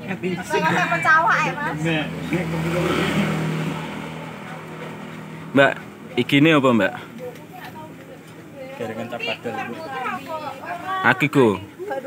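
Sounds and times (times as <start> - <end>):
vehicle passing by: 0.0 - 7.3.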